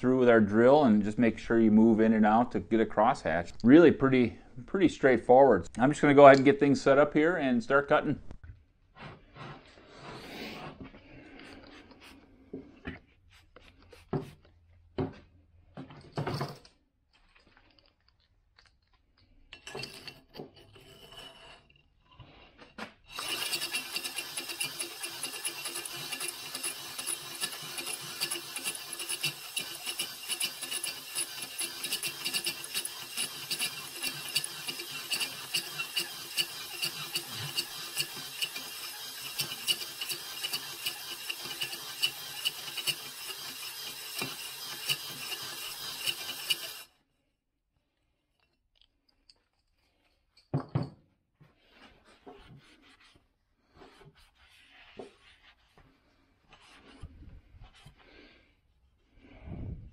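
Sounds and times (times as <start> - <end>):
cylinder hone rasping scrape: 19.7 - 46.9.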